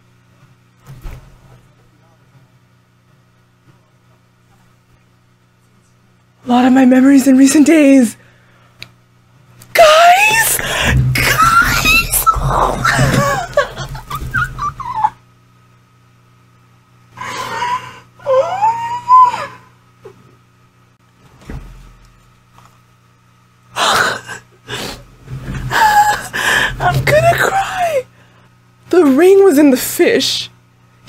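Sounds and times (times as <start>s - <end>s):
low steady hum: 0.0s - 31.0s
woman squealing and shrieking: 9.8s - 13.8s, 17.5s - 19.7s, 25.7s - 28.0s.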